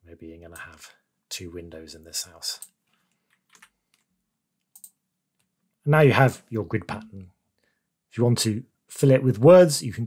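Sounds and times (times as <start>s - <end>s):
computer keyboard clicks: 4.7s - 5.0s.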